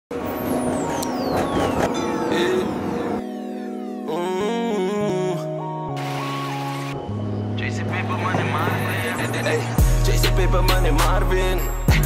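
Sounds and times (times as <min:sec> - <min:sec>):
road traffic noise: 0:00.1 - 0:03.4, 0:05.9 - 0:12.0.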